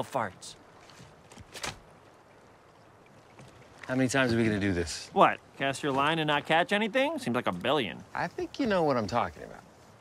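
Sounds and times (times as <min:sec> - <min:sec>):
quiet lake hiss: 0:00.0 - 0:10.0.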